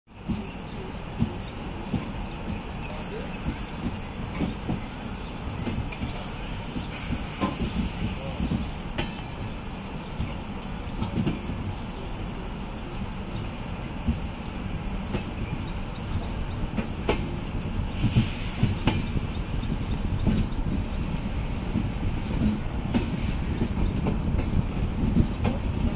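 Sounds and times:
train wheels rumbling on track: 0.1 - 25.9.

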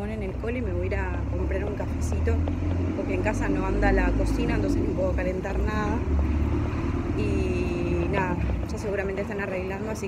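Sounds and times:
street traffic rumbling: 0.0 - 10.0.

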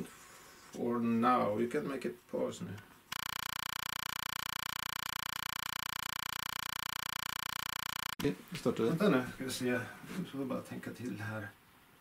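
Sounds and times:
pulsing electronic buzz: 3.1 - 8.2.

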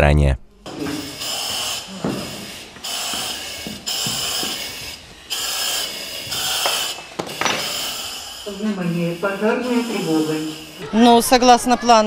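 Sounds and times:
breathing apparatus hissing: 0.6 - 11.5.

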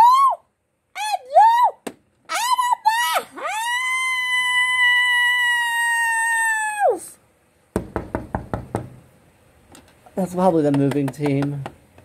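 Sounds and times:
high-pitched scream: 0.0 - 7.2
knocking on a door: 7.7 - 9.0.

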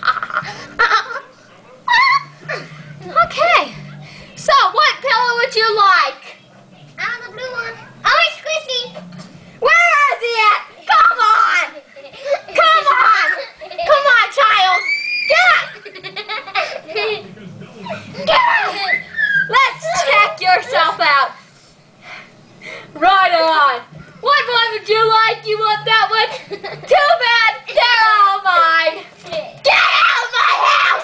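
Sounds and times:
girl laughing: 11.7 - 14.0, 15.4 - 20.2
girl shrieking: 14.6 - 15.8, 18.3 - 20.0, 29.7 - 31.0.

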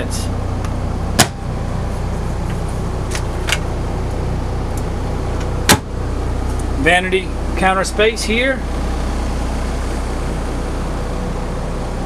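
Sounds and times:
low machinery hum: 0.0 - 12.0.

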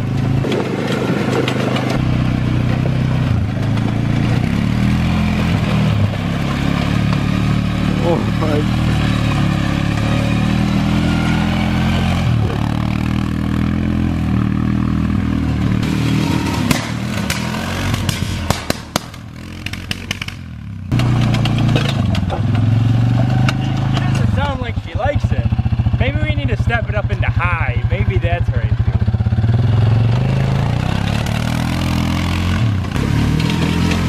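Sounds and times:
clattering knocks of bouncing vehicle: 0.0 - 10.6, 15.3 - 27.5
atv engine running: 0.0 - 34.0.

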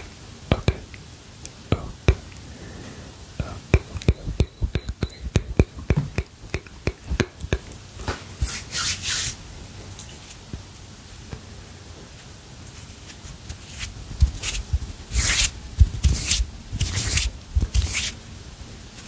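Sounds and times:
hands rubbing and swishing: 12.8 - 18.2.

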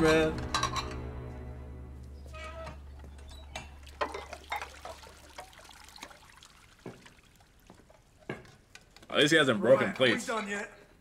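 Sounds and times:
dishes and utensils clinking: 0.0 - 1.0, 2.6 - 5.0.

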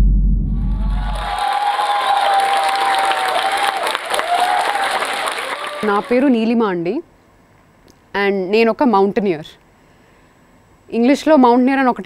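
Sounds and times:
deep bass rumble music: 0.0 - 1.4
audience applause: 0.8 - 6.4.

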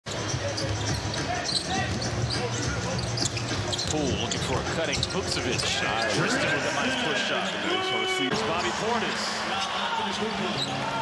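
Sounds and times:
arena crowd hum: 0.1 - 11.0.

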